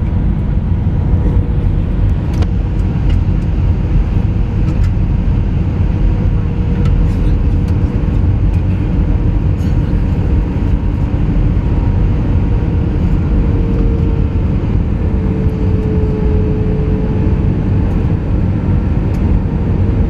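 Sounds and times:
jet engine cabin rumble: 0.0s - 20.0s.

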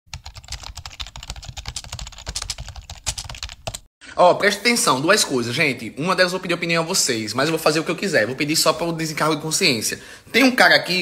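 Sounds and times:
rapid keyboard typing: 0.1s - 3.9s.

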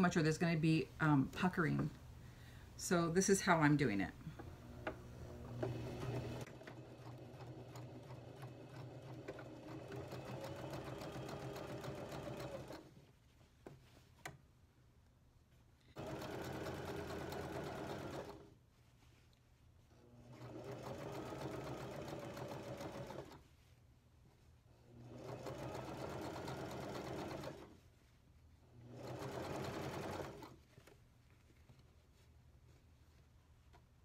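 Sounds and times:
sewing machine stitching: 4.6s - 13.0s, 16.0s - 18.5s, 20.2s - 23.4s, 24.9s - 27.8s, 28.8s - 30.6s.

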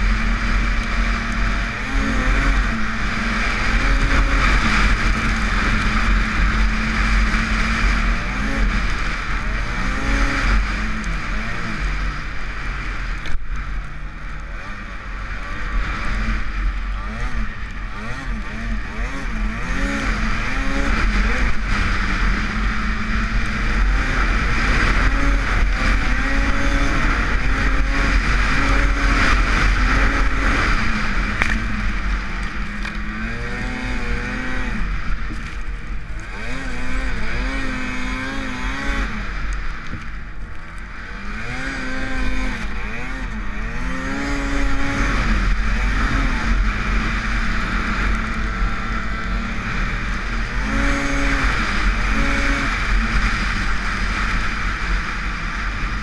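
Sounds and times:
snowmobile engine revving: 0.0s - 56.0s.

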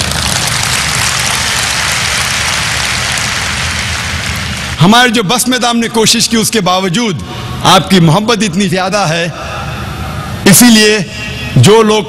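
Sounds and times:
large crowd applauding: 0.0s - 4.8s.

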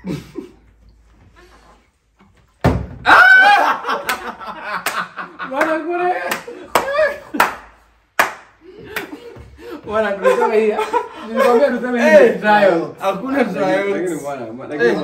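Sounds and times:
excited shouting: 3.0s - 4.2s, 5.4s - 7.6s
laughter: 3.2s - 7.5s, 8.6s - 11.9s
sharp claps or slaps: 3.9s - 9.4s.

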